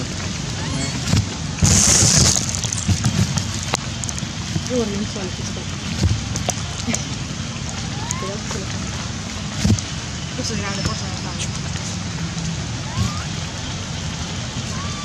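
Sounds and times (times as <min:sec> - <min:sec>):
steady outdoor hiss: 0:00.0 - 0:15.0.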